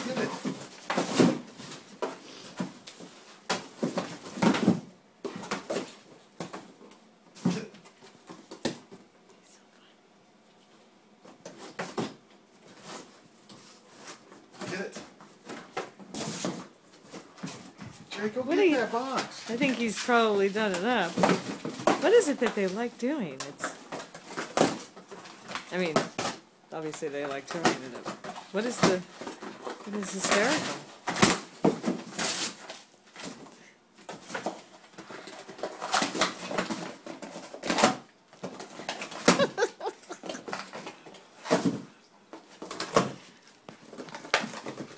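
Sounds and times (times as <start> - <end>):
dog ripping cardboard: 27.6 - 33.5, 34.1 - 41.9.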